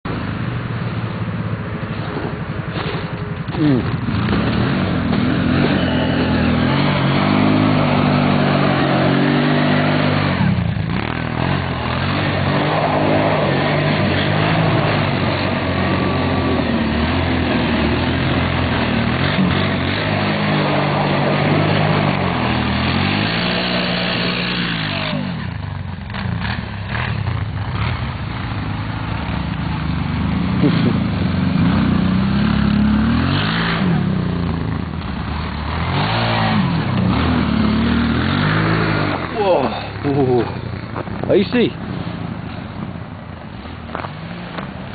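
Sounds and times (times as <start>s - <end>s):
quad engine revving: 1.2s - 44.9s.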